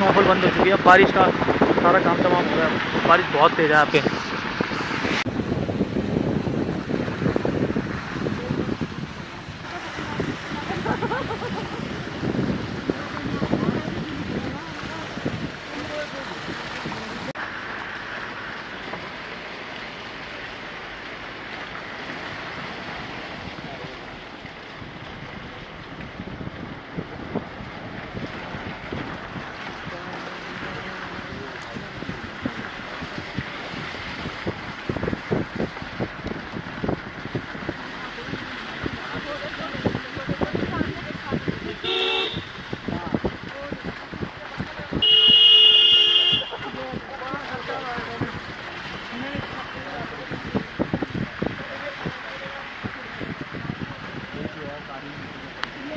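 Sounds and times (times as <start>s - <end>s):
vehicle horn honking: 41.6s - 42.5s, 45.0s - 46.9s.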